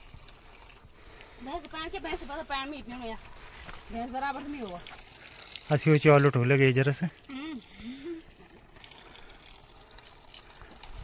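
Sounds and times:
insect chorus chirring: 0.0s - 11.0s.

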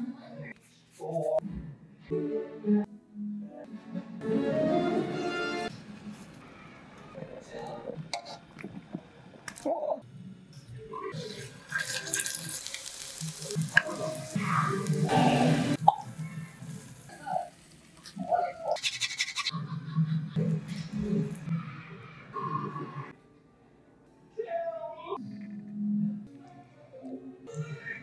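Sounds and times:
music: 1.2s - 6.4s, 13.4s - 17.3s, 19.5s - 28.0s.

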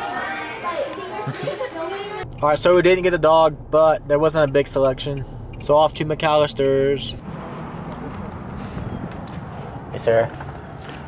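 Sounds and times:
babble of people talking: 0.0s - 2.2s
children's voices: 0.0s - 2.2s.

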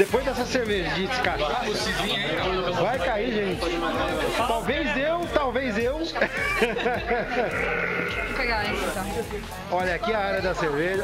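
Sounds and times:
people talking: 0.0s - 11.0s
high quavering voice-like sound: 7.1s - 9.1s.

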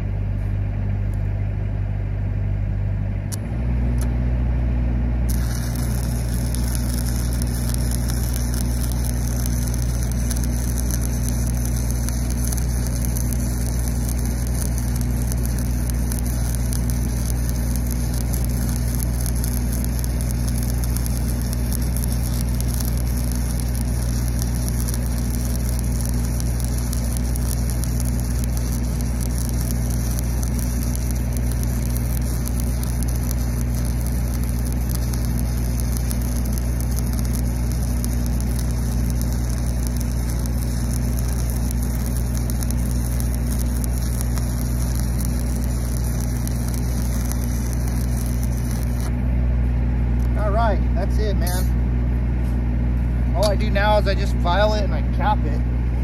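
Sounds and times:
welding rig engine running: 5.0s - 56.0s
welding arc crackling hiss: 5.3s - 55.6s.

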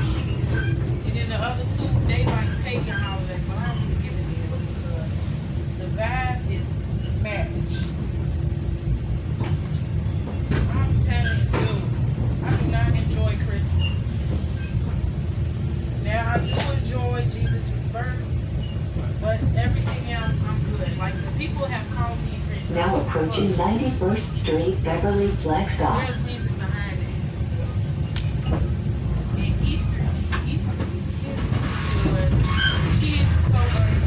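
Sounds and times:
train rumbling inside passenger car: 0.0s - 34.0s
indistinct voices: 22.5s - 26.4s.

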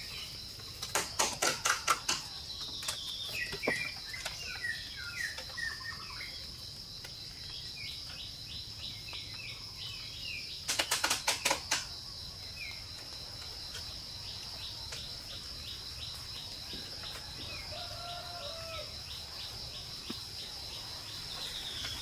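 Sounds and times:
birds chirping: 0.0s - 22.0s.

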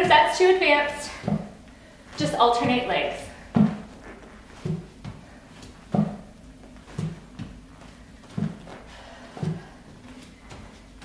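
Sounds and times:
feet thudding on exercise mat: 1.0s - 11.0s.

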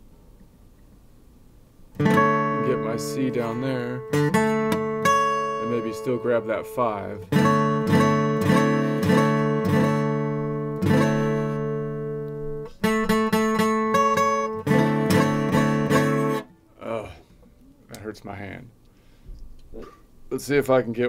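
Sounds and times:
acoustic guitar chords ringing: 1.9s - 17.1s.

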